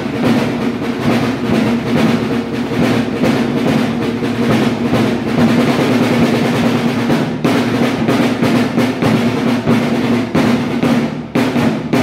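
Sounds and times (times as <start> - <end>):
rapid drum roll: 0.0 - 12.0.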